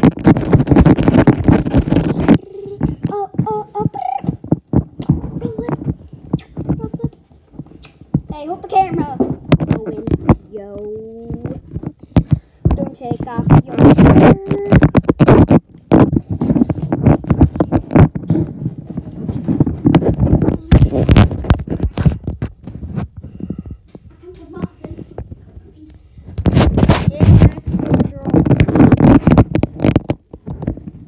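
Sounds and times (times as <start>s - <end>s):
child's wordless vocal sounds: 1.6s - 4.4s, 5.1s - 7.2s, 12.8s - 14.9s.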